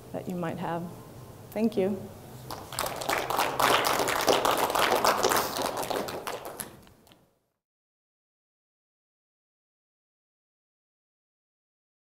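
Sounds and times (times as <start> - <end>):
audience applauding: 2.5 - 6.9.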